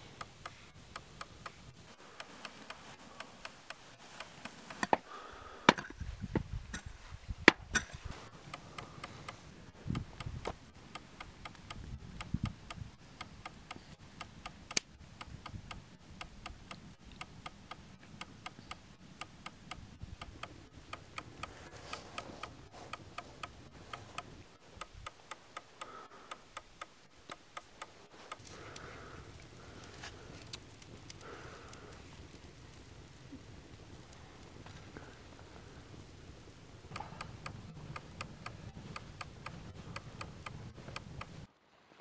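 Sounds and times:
steady clicking: 0.0 - 6.0, 7.5 - 33.2, 36.6 - 41.5.

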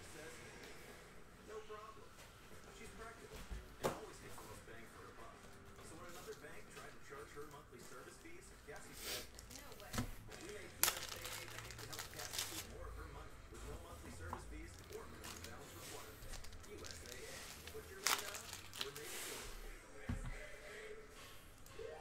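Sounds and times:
wrapper ripping: 9.3 - 12.7, 14.8 - 15.6, 16.2 - 19.1
wrapper crinkling: 9.3 - 12.8, 14.6 - 19.1
card handling: 9.4 - 12.7, 14.6 - 19.2.

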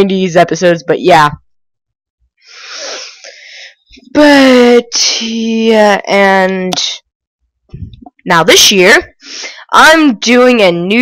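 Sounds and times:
person breathing out: 2.4 - 3.8.

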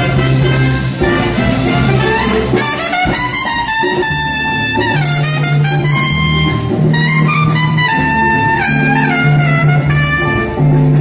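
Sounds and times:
bass line: 0.0 - 11.0
big band playing jazz: 0.0 - 11.0
trumpet holding long notes: 0.0 - 11.0.

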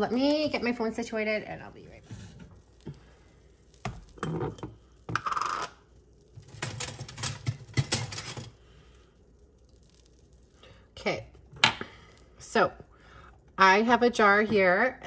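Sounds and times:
kitchenware clinking and scraping: 4.1 - 5.8, 6.4 - 8.6.

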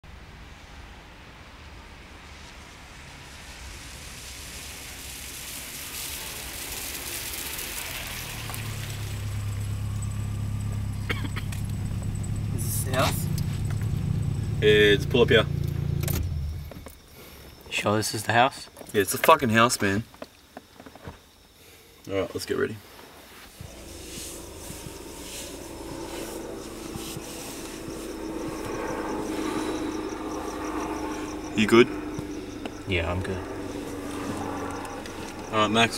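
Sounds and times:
road noise hiss: 0.1 - 19.8, 21.4 - 35.9
low engine hum: 4.2 - 17.0, 23.6 - 35.9
low steady drone: 4.3 - 16.6, 23.6 - 35.9.

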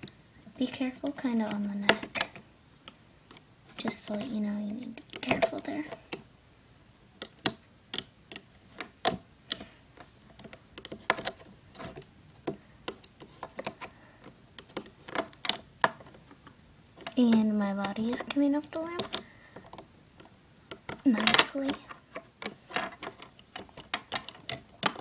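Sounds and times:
plastic loom and hook clicking: 1.0 - 6.3, 7.2 - 25.0.

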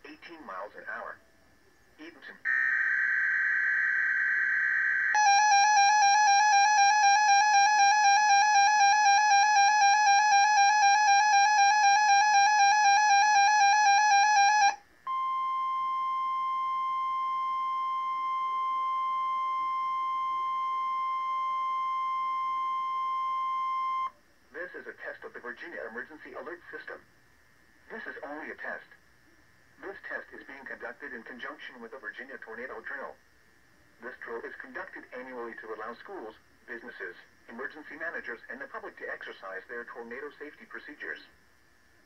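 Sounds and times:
steady alarm tone: 2.5 - 24.2
warbling electronic alert tone: 4.7 - 14.8.

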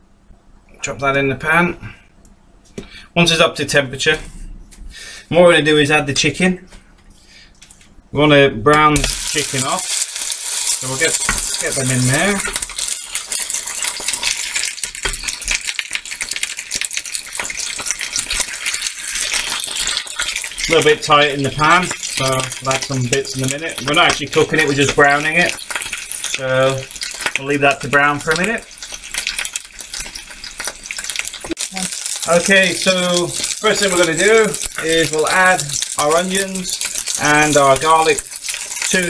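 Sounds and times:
chicken sizzling in oil: 9.0 - 39.0.

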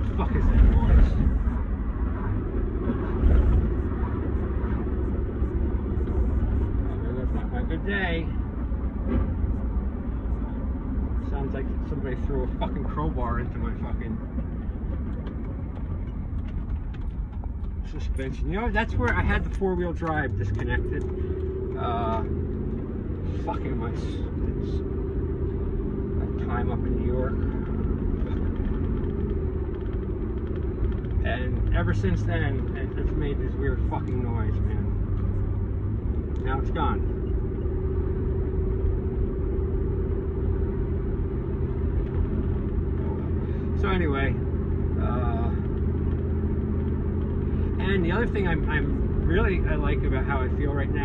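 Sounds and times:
vehicle cabin rumble: 0.0 - 51.0.

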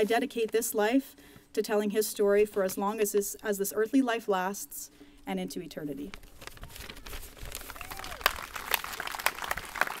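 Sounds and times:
audience clapping: 7.7 - 10.0.

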